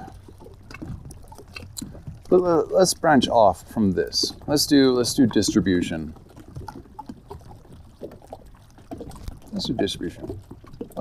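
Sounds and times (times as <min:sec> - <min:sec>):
lake water lapping: 0:00.0 - 0:11.0.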